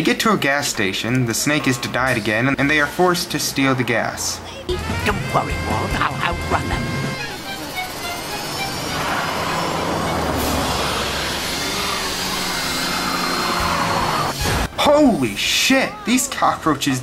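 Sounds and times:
background music: 0:04.7 - 0:10.9
car engine sound effect: 0:04.7 - 0:14.7.

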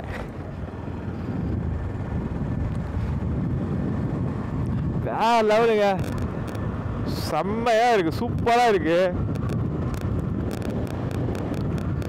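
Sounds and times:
motorcycle engine and road rumble: 0:00.0 - 0:12.0
wind buffeting microphone: 0:00.0 - 0:12.0.

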